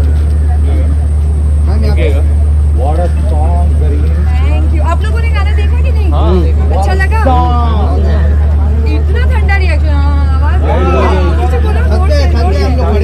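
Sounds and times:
loud steady low hum: 0.0 - 13.0
people talking: 0.0 - 13.0.

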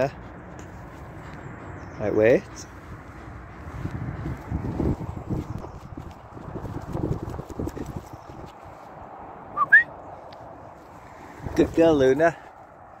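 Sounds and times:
wind buffeting microphone: 0.0 - 13.0
footsteps on grass: 2.7 - 9.3, 10.3 - 12.7.

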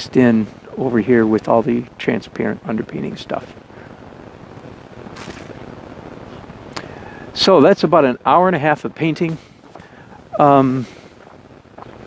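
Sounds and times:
outdoor background noise: 0.0 - 12.0
short high scratchy hiss: 4.5 - 7.6.

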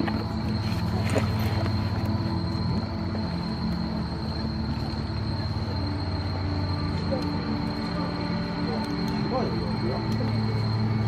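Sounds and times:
deep ambient drone: 0.0 - 11.0.

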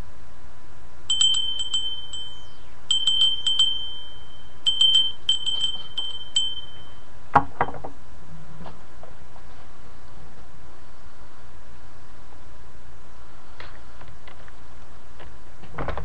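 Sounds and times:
rustle: 0.0 - 16.0
small handbell ringing: 1.1 - 7.1.

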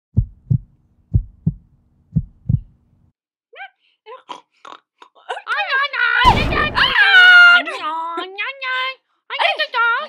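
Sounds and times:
heartbeat thumps: 0.1 - 2.8.

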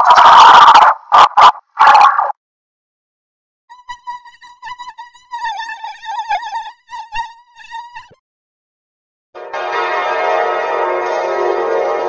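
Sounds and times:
stuttering buzzy electronic tone: 3.7 - 8.2.

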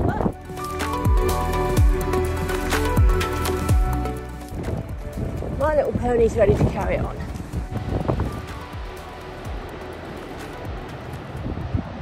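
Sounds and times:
soft background music: 0.0 - 12.0
wind noise on microphone: 0.0 - 12.0.

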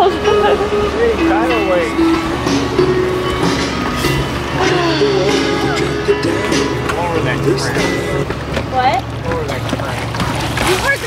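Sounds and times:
boat motor running: 0.0 - 11.0.

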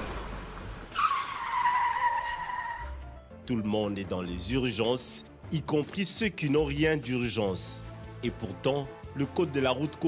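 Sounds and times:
street traffic: 0.0 - 3.2
high vehicle squeal: 0.9 - 3.0.

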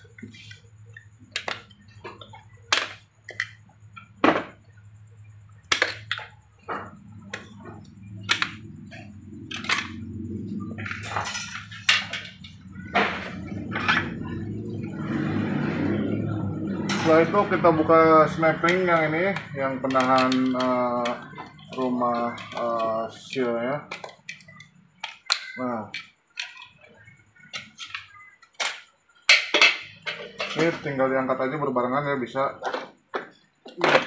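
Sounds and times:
metal scraping: 5.6 - 24.1.

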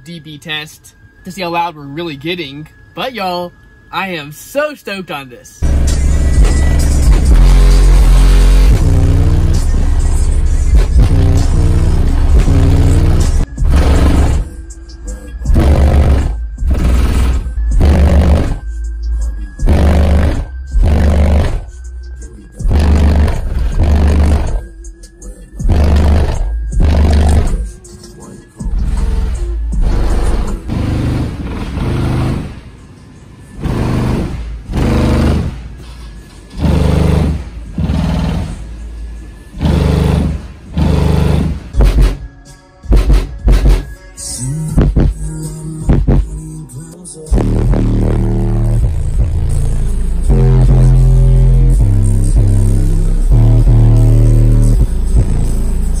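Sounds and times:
faint high whine: 0.0 - 5.6
bass-heavy music: 0.0 - 32.6, 33.5 - 35.8, 36.4 - 56.0.

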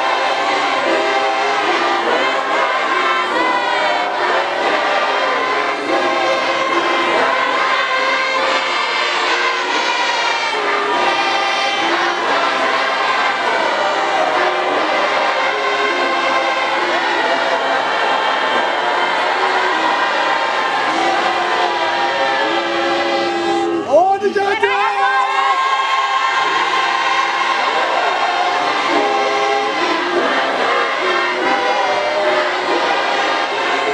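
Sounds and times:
congregation singing a hymn: 0.0 - 23.8, 25.4 - 33.9.

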